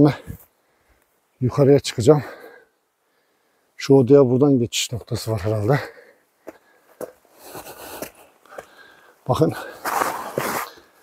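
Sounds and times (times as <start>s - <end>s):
soft breath-like rush: 2.2s - 3.8s, 5.9s - 9.9s
scuffs on rock: 6.4s - 10.9s.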